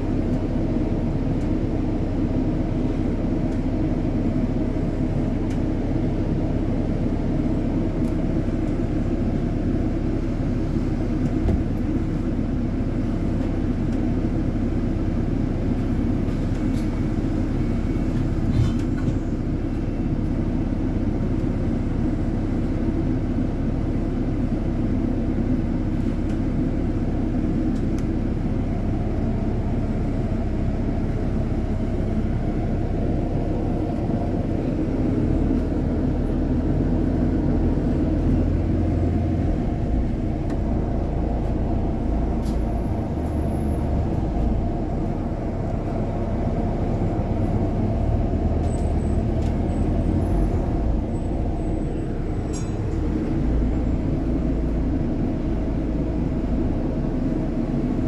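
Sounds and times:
bus engine and road rumble: 0:00.0 - 0:58.0.

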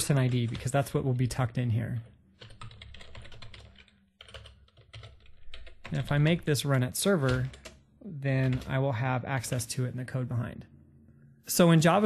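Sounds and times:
typing on keyboard: 0:00.0 - 0:00.9, 0:02.4 - 0:07.8, 0:08.4 - 0:08.7.

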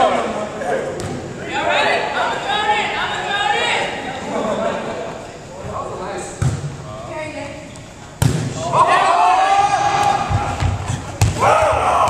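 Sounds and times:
players' voices: 0:00.0 - 0:12.0
volleyball smacks echoing: 0:08.2 - 0:08.6, 0:09.9 - 0:11.5.

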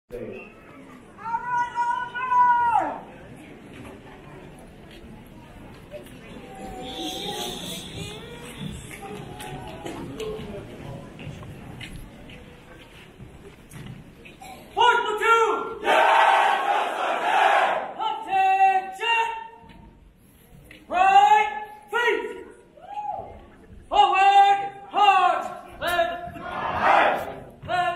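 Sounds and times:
crowd murmur: 0:02.8 - 0:14.8, 0:15.8 - 0:18.0, 0:25.4 - 0:27.7
person shouting commands: 0:14.8 - 0:15.8, 0:17.8 - 0:19.6, 0:20.9 - 0:22.5, 0:23.9 - 0:27.9
crowd shouting together: 0:15.8 - 0:18.2, 0:26.4 - 0:27.5.

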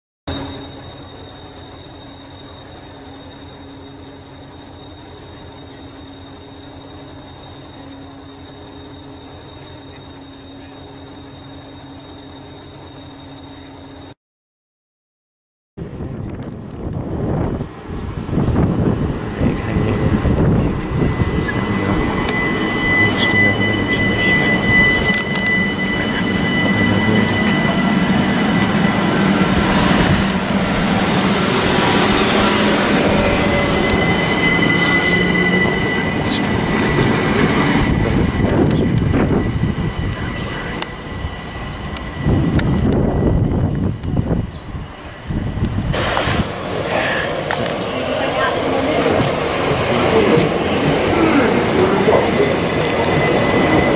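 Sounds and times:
high-pitched train whine: 0:00.3 - 0:14.2, 0:15.8 - 0:53.9
train wheels rumbling on rail: 0:15.8 - 0:53.9.

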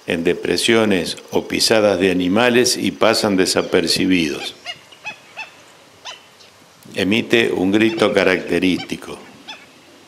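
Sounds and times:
stilt calling: 0:00.0 - 0:10.0.

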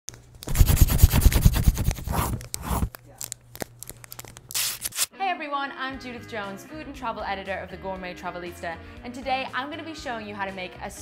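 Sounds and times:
pencil scribbling on paper: 0:00.5 - 0:02.9.

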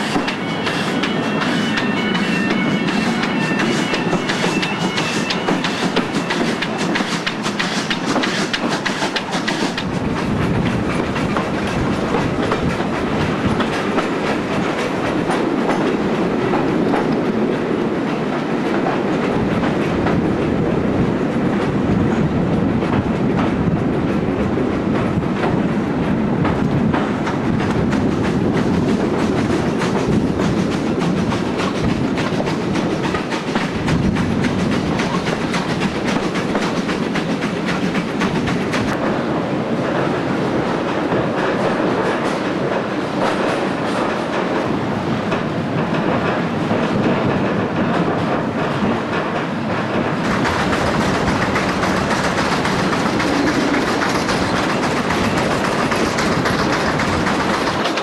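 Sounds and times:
train running rumble: 0:00.0 - 0:58.0
train wheels clicking over rail joints: 0:00.0 - 0:58.0.

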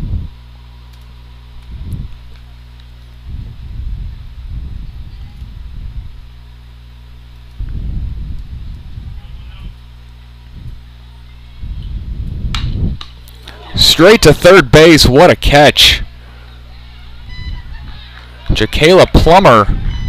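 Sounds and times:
steady low hum: 0:00.0 - 0:20.0
low muffled rumble: 0:01.5 - 0:13.7, 0:16.0 - 0:20.0
bat hitting ball: 0:12.5 - 0:13.2.

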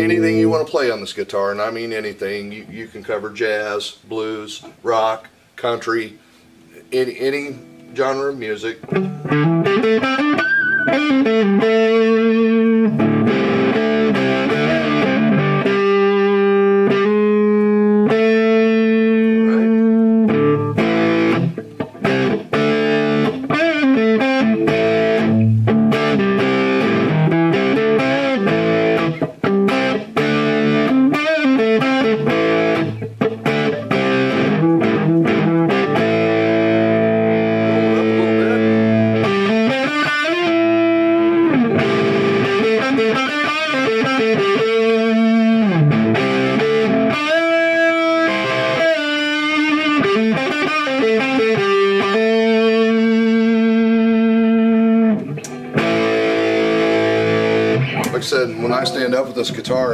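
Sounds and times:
distorted electric guitar: 0:07.6 - 0:59.9.

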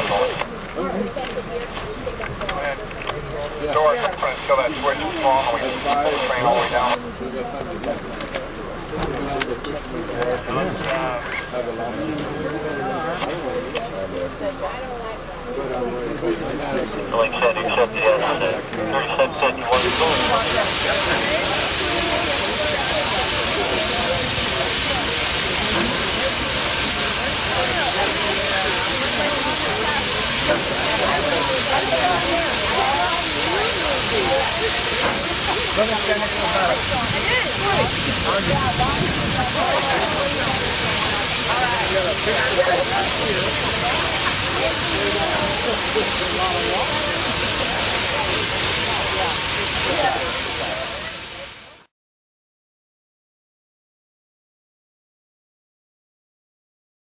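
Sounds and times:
crowd chatter: 0:00.0 - 0:51.9
people talking: 0:00.0 - 0:51.9
steam locomotive hissing steam: 0:19.0 - 0:51.9.

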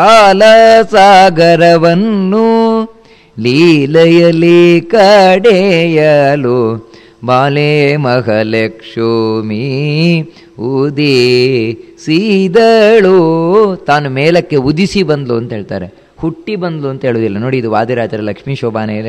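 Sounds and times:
man chanting verses: 0:00.0 - 0:19.0.

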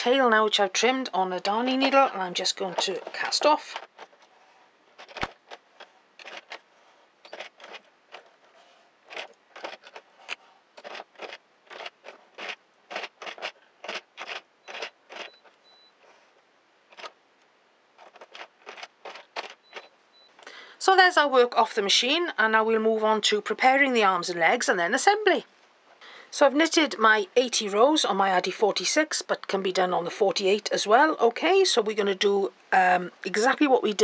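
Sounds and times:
needle clicking on knitting machine: 0:07.2 - 0:08.3, 0:09.1 - 0:15.5.

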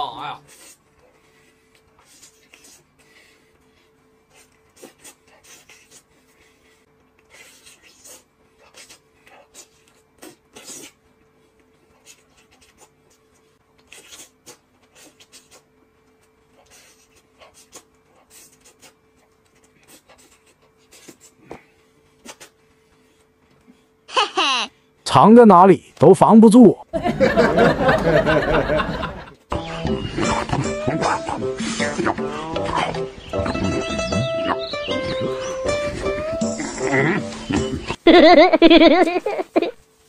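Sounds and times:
loud laughter: 0:27.0 - 0:29.4, 0:36.8 - 0:39.8.

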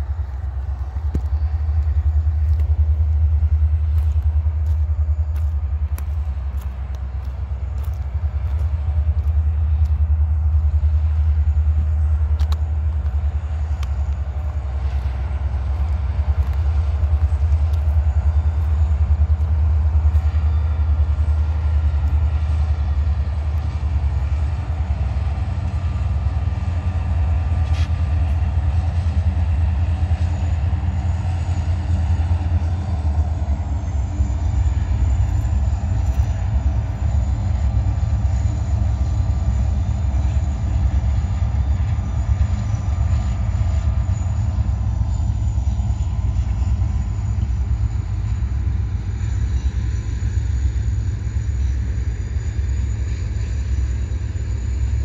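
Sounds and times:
freight train passing slowly: 0:00.0 - 0:55.0.

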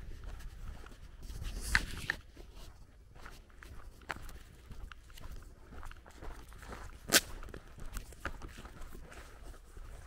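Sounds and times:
footsteps on gravel road: 0:00.0 - 0:10.0.

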